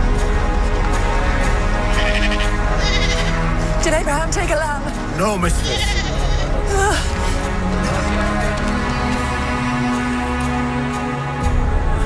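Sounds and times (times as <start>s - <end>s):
soundtrack music: 0.0s - 12.0s
sheep and goats bleating: 1.8s - 3.6s, 5.5s - 6.7s.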